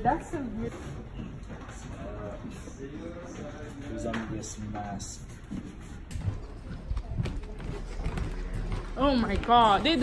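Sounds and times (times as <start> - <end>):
footsteps on a hard floor: 4.2 - 10.0.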